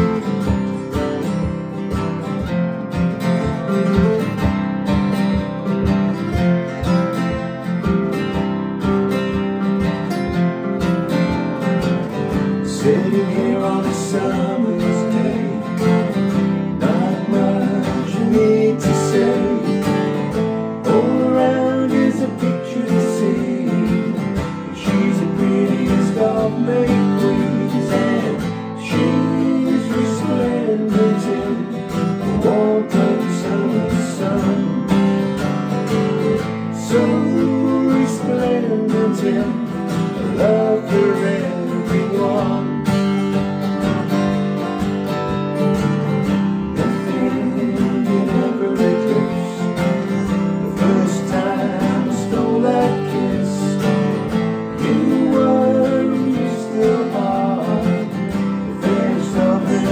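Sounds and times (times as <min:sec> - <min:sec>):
acoustic guitars strumming: 0:00.0 - 0:59.9
man singing: 0:12.4 - 0:35.3, 0:36.4 - 0:43.2, 0:46.6 - 0:59.9.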